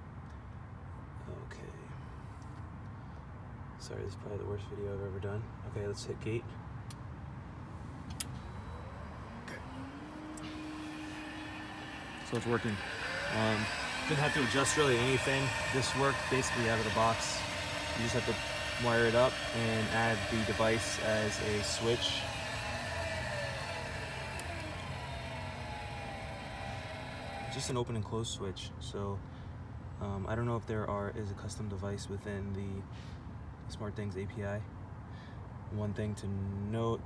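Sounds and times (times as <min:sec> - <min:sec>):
sharp click: 0:08.0 - 0:08.4
gate opener motor humming: 0:08.0 - 0:27.8.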